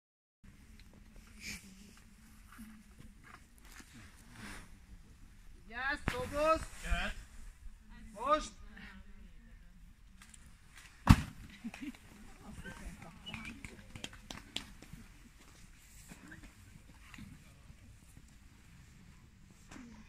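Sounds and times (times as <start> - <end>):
faint chatter: 7.7 - 20.0
sharp thump: 11.0 - 11.4.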